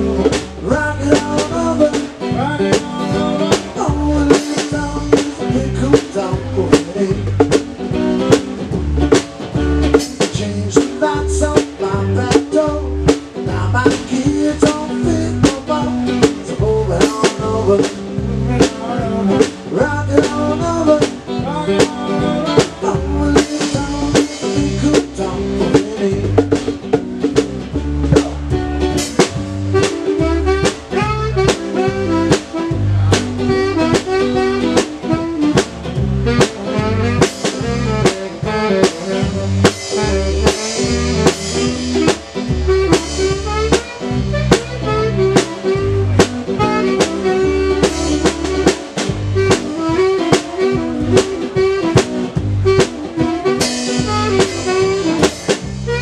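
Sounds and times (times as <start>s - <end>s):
drum kit steady beat: 0.0s - 56.0s
guitar: 0.0s - 56.0s.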